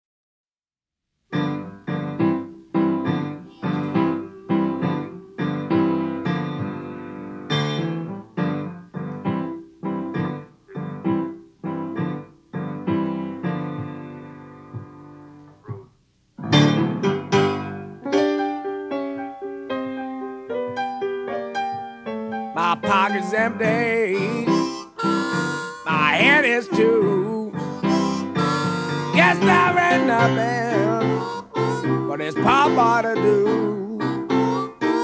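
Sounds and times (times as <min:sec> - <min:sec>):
blues piano chords: 0:01.3 - 0:35.0.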